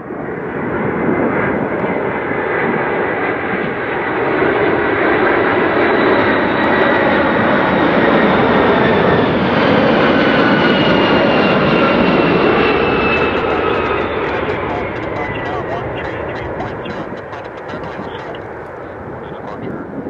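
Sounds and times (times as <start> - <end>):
jet airliner passing overhead: 0.0 - 20.0.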